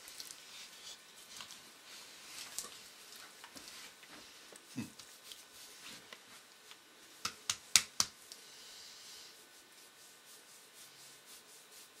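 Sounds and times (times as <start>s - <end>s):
faint soft rubbing: 0.4s - 7.2s, 8.4s - 12.0s.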